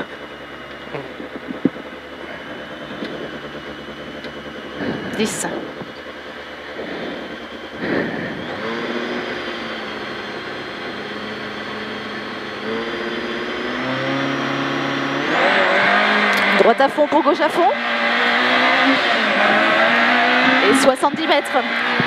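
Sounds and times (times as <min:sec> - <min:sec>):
rally car engine revving: 0:00.0 - 0:22.0.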